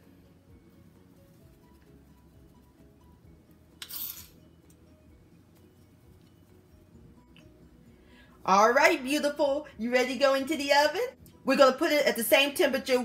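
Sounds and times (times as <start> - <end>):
quiet background music: 0.0 - 13.0
metal spoon scraping dish: 3.8 - 4.4.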